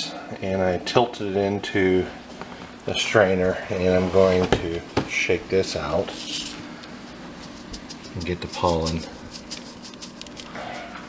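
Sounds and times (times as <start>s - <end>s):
steady low hum: 0.0s - 11.0s
corn tassels rustling in strainer: 6.0s - 11.0s.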